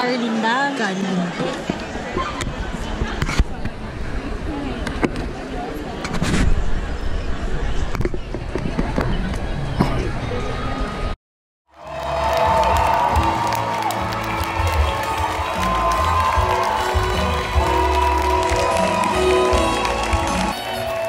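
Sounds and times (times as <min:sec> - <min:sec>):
audience applauding and cheering: 0:11.7 - 0:21.0
orchestra music: 0:11.8 - 0:21.0.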